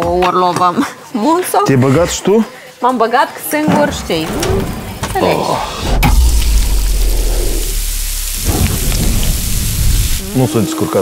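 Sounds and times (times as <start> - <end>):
deep low rumble: 4.0 - 10.4
food sizzling on a grill: 6.3 - 11.0.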